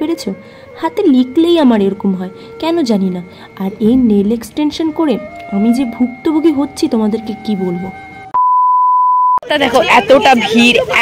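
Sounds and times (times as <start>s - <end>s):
electronic beep: 8.3s - 9.4s.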